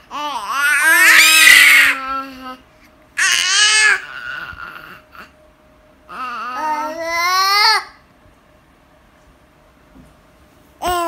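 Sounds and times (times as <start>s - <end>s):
infant squealing: 0.4s - 2.2s.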